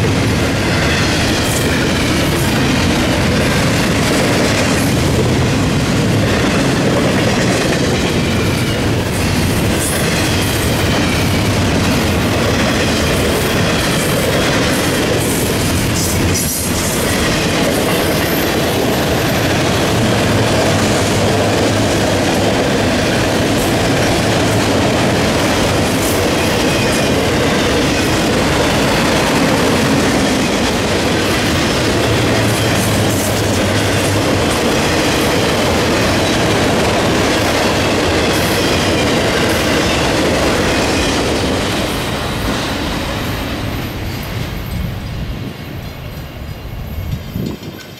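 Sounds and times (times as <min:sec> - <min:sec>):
freight train passing: 0:00.0 - 0:47.9.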